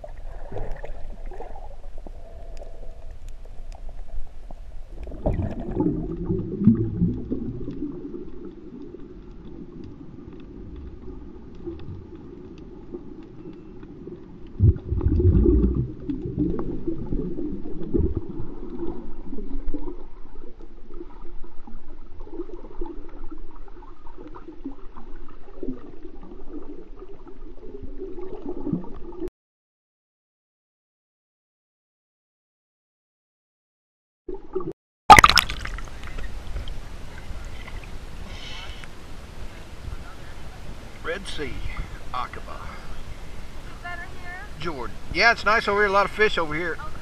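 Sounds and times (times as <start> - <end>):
underwater rumbling and gurgling: 0.0 - 29.3
water churning: 0.0 - 29.3, 34.4 - 47.0.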